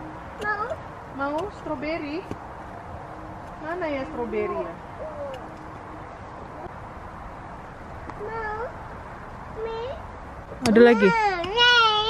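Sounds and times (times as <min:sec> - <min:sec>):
small child whining: 0:05.0 - 0:05.5, 0:08.2 - 0:08.8.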